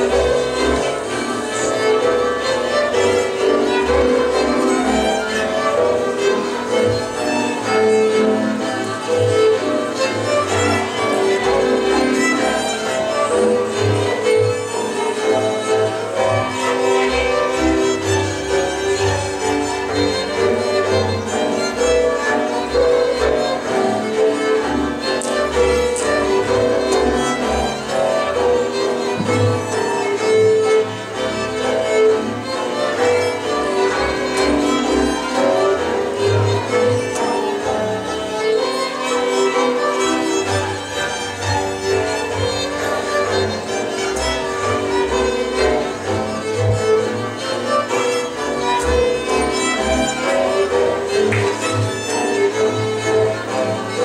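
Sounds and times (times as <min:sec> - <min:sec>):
bowed double bass: 0:00.0 - 0:54.0
fiddles playing melody: 0:00.0 - 0:54.0.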